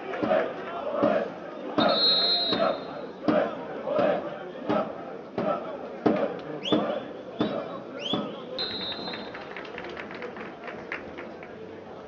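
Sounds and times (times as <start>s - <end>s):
players shouting: 0.0s - 9.4s
referee's whistle: 1.8s - 3.2s, 7.4s - 9.4s.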